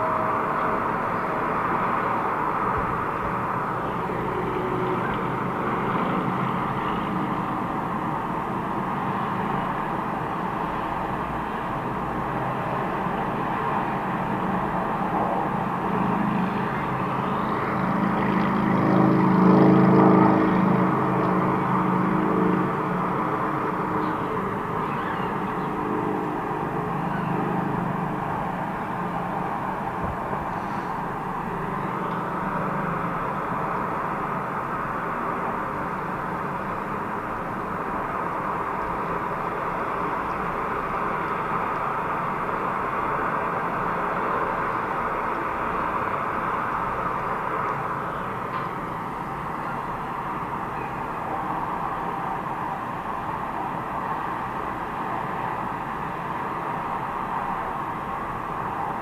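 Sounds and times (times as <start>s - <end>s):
heavy truck passing: 0.0s - 59.0s
highway traffic: 0.0s - 59.0s.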